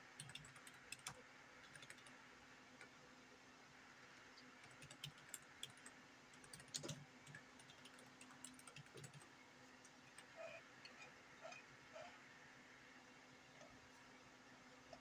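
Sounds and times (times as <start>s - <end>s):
typing on computer keyboard: 0.0s - 2.2s, 4.6s - 9.3s.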